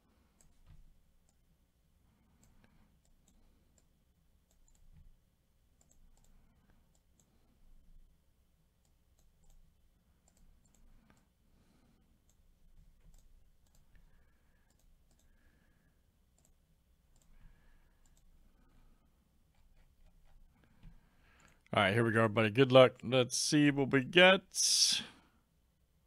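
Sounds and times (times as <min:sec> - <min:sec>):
computer mouse clicks: 0:00.3 - 0:01.4, 0:02.3 - 0:05.1, 0:05.8 - 0:07.4, 0:08.8 - 0:11.3, 0:12.2 - 0:15.5, 0:16.3 - 0:18.7, 0:19.5 - 0:21.7.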